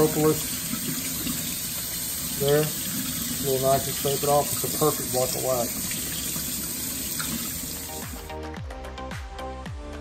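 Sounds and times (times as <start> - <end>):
tap water running into sink: 0.0 - 8.3.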